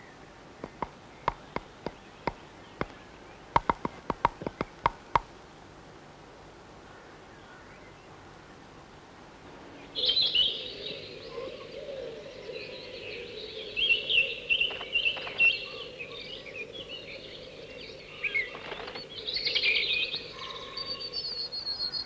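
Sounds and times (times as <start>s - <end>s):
chickadees chirping: 0.0s - 5.4s, 9.6s - 22.0s
faint steady hum: 0.0s - 22.0s.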